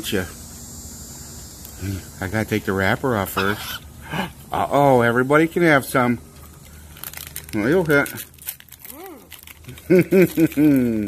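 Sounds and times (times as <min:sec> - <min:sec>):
man laughing: 0:03.4 - 0:04.7, 0:09.7 - 0:11.0
faint clicks and crinkles: 0:06.4 - 0:11.0.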